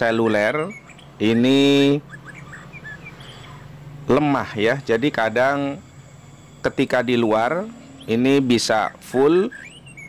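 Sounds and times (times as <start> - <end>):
faint bird chirps: 0.0 - 10.0
steady low hum: 0.0 - 10.0.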